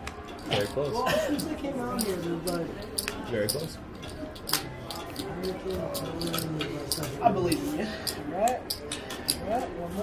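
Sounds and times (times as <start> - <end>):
low background voices: 0.0 - 10.0.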